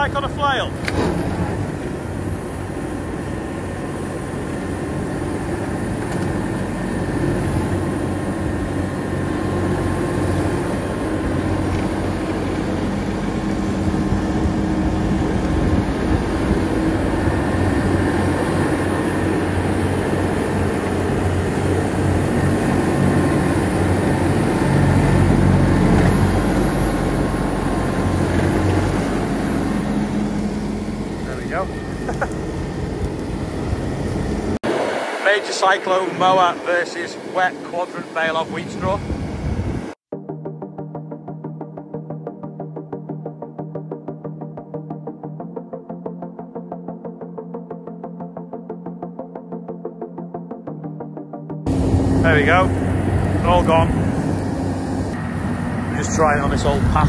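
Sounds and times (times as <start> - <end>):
tractor engine under load: 0.0 - 34.6
rotary mower chewing straw: 3.0 - 34.5.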